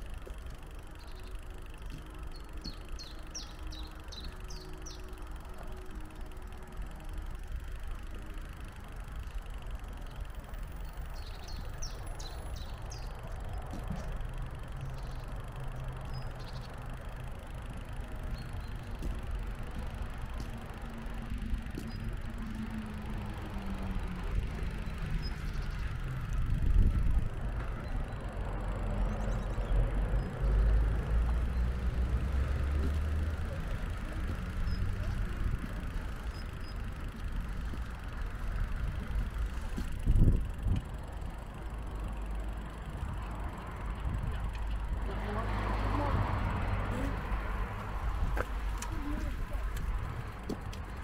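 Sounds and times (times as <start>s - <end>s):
wind rumble on microphone: 24.6s - 28.0s, 38.8s - 41.0s
vehicle passing: 28.2s - 51.0s.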